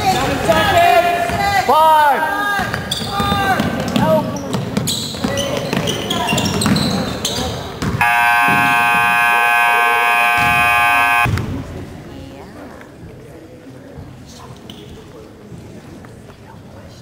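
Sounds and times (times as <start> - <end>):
sneakers squeaking: 2.7 - 3.6, 4.4 - 11.3
scoreboard buzzer: 8.0 - 11.3.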